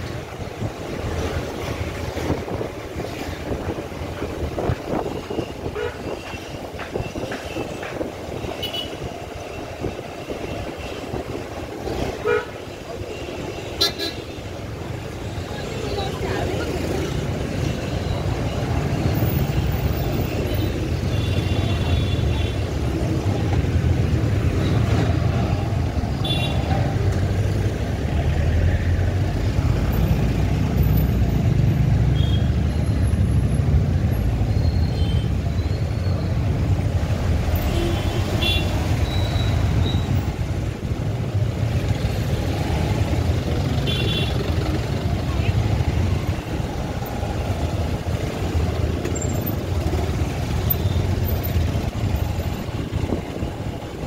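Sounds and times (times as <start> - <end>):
traffic engines rumbling: 0.0 - 54.0.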